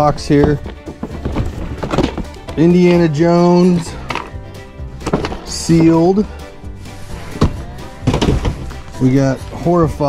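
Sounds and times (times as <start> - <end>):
boxes knocking together: 0.0 - 4.4, 5.0 - 6.1, 7.0 - 9.3
background music: 0.0 - 10.0.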